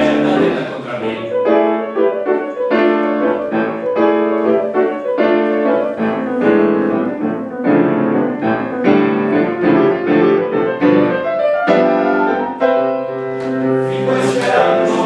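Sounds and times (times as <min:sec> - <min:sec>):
piano chords: 0:00.0 - 0:15.0.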